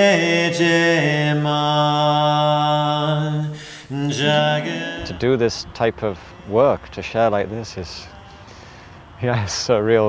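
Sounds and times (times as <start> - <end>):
man chanting a cappella: 0.0 - 10.0.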